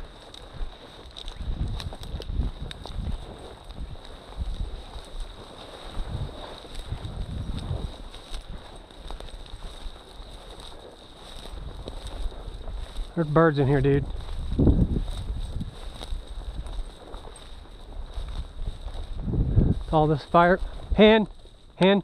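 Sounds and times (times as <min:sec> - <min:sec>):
wind buffeting microphone: 0:00.0 - 0:21.8
dry grass rustling: 0:00.0 - 0:22.0.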